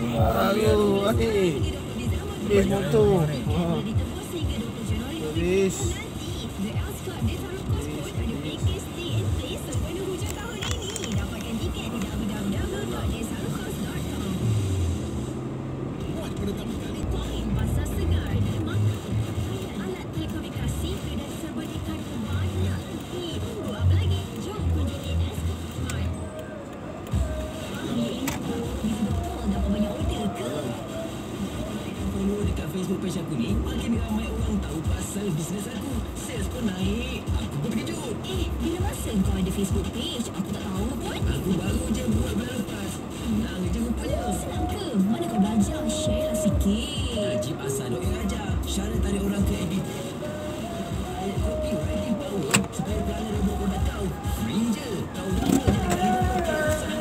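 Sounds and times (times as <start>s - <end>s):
music: 0.0s - 15.3s, 16.0s - 57.0s
engine and road rumble in car: 0.0s - 57.0s
faint voices: 0.0s - 57.0s.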